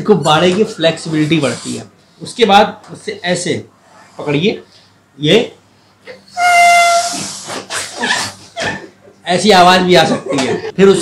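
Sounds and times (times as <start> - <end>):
air squealing from balloon neck: 6.0 - 8.9.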